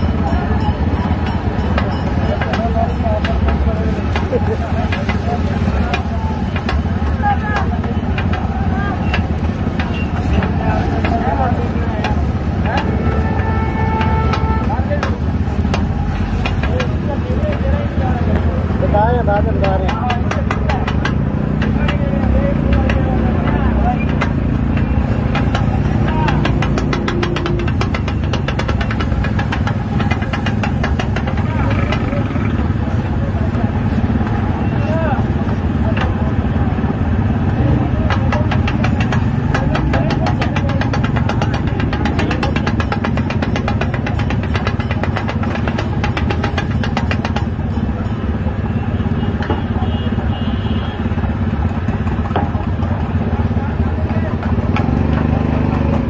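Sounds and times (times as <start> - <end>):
chatter of voices: 0.0 - 44.4
motorcycle engines: 0.0 - 56.0
street traffic hum: 0.0 - 56.0.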